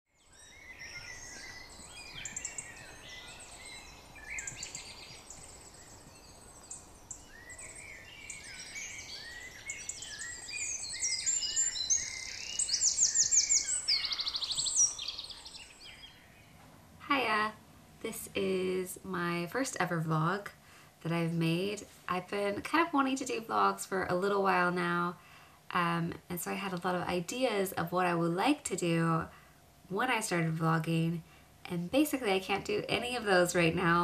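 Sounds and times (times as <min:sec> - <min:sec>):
songbirds singing in chorus: 0:00.1 - 0:16.9.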